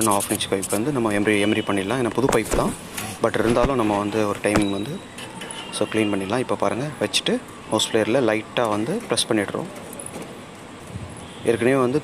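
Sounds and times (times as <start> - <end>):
man speaking: 0.0 - 5.0.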